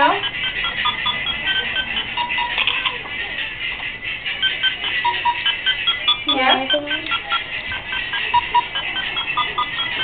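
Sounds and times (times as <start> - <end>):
electronic beeping tune: 0.0 - 3.1, 4.3 - 10.0.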